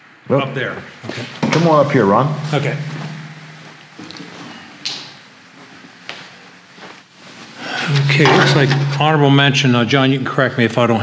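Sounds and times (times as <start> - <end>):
low steady hum: 0.0 - 11.0
sharp knock: 2.3 - 4.0, 7.9 - 9.6.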